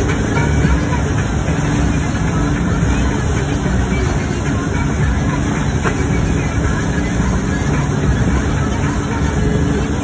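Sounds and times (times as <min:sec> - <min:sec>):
boat engine running: 0:00.0 - 0:10.0
churning wake water rushing: 0:00.0 - 0:10.0.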